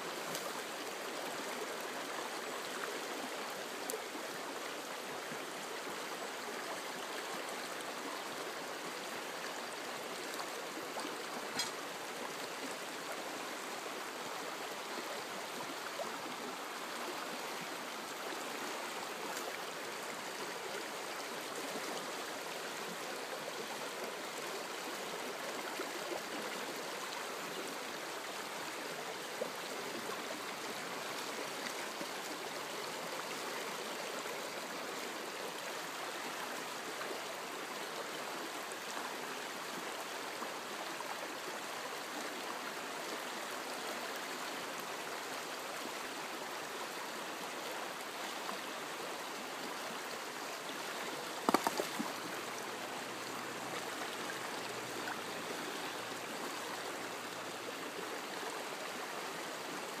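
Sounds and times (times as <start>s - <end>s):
river rushing over stones: 44.6s - 60.0s.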